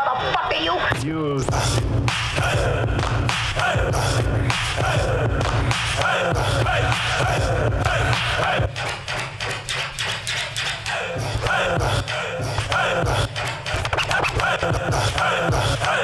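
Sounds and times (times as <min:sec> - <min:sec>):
turntable scratching: 0:00.0 - 0:16.0
bass-heavy beat: 0:00.9 - 0:16.0.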